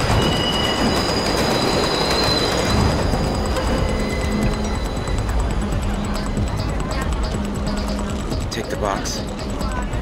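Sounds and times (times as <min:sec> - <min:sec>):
train wheel squeal: 0:00.0 - 0:06.7
elevated train rumbling: 0:00.0 - 0:10.0.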